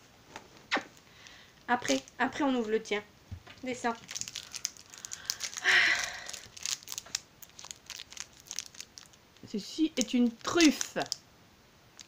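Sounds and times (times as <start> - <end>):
plastic wrapper crinkling: 1.7 - 2.8, 3.6 - 11.2.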